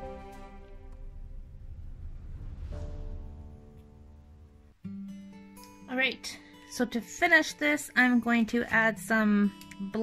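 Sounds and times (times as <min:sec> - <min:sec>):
background music: 0:00.0 - 0:01.4.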